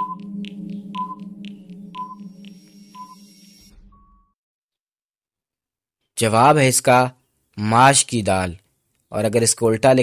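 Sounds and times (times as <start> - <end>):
low drone: 0.0 - 3.8
higher electronic tone: 0.0 - 4.4
short electronic beeps: 2.0 - 4.4.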